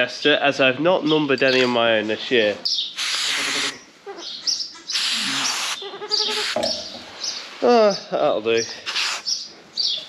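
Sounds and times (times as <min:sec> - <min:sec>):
birds chirping: 0:00.5 - 0:10.0
spray can hissing: 0:03.0 - 0:03.6, 0:08.9 - 0:09.3.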